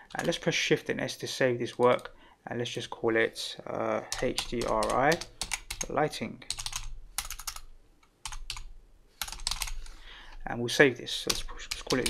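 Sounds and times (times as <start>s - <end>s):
computer keyboard typing: 4.1s - 9.9s, 11.2s - 12.0s.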